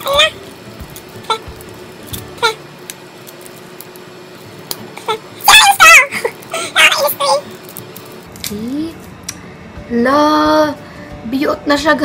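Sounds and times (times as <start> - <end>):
plastic straw wrapper: 0.0 - 8.8.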